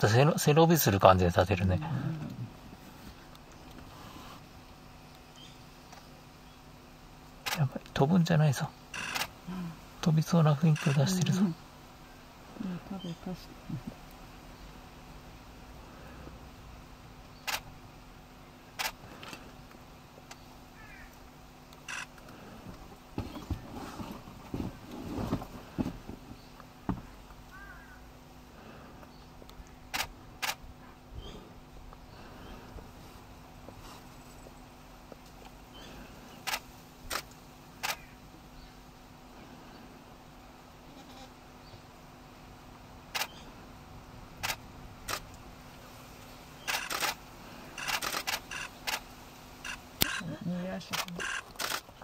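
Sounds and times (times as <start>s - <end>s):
camera shutter click: 9.0s - 9.3s, 36.5s - 38.1s, 46.6s - 47.2s, 47.8s - 49.0s, 49.6s - 50.2s, 50.9s - 51.9s.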